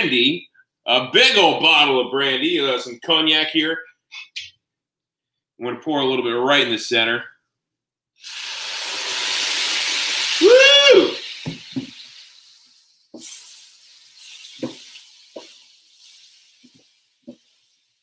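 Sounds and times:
liquid sizzling on griddle: 8.2s - 18.0s.

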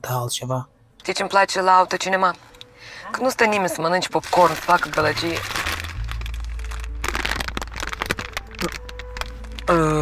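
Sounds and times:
foil bag crinkling: 3.9s - 9.8s.

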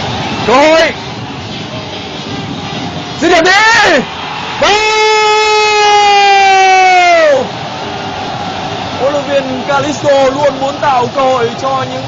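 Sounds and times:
stadium crowd cheering: 0.0s - 12.0s
commentator shouting: 3.2s - 7.5s.

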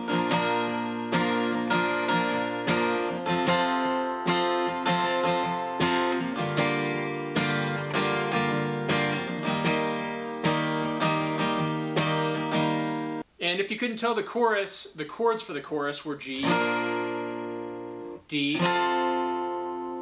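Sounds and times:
acoustic guitar strumming: 0.0s - 13.2s, 16.2s - 20.0s.

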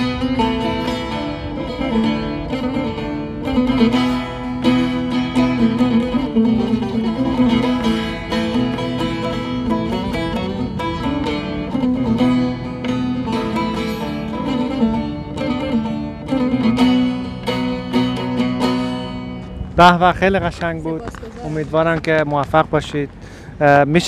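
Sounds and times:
plucked lute melody with drone: 0.0s - 21.6s.

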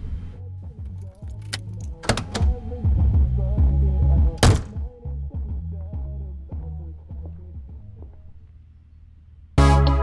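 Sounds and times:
music with deep bass line: 0.3s - 8.5s, 9.6s - 10.0s
loud thunk: 4.4s - 4.8s.

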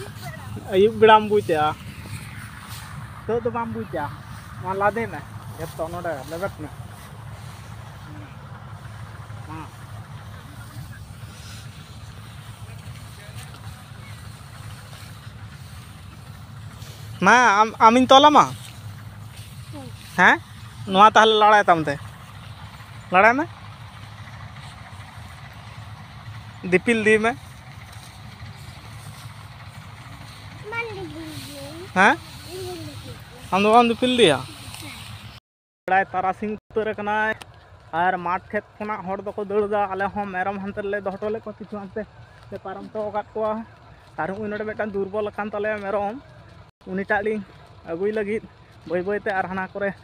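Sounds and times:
low engine hum: 0.0s - 50.0s
high-pitched voice: 30.6s - 33.5s.

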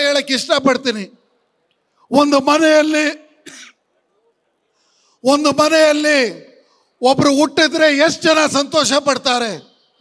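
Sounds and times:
man speaking into microphone: 0.0s - 1.3s, 1.9s - 4.4s, 5.1s - 9.8s
cough-like huff: 3.4s - 3.8s
faint in-breath: 4.6s - 5.2s, 6.6s - 7.0s.

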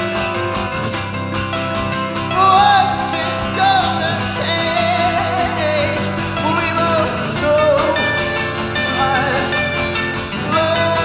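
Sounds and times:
guitar: 0.0s - 11.0s.

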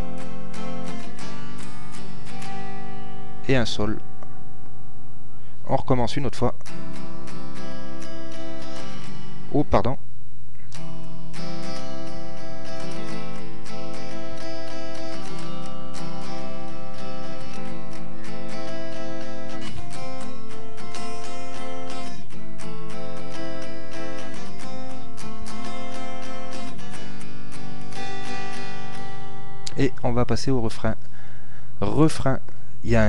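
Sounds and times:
acoustic guitar strumming chords: 0.0s - 5.6s, 6.2s - 9.8s, 10.6s - 31.7s.

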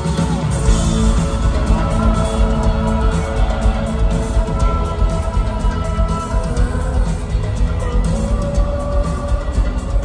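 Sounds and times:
rock band playing loudly: 0.0s - 10.0s.

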